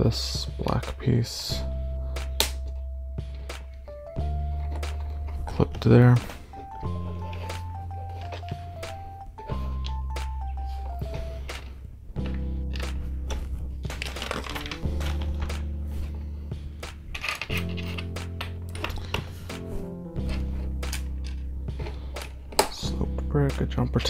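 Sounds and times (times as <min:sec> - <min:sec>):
background music low chords: 0:00.0 - 0:24.0.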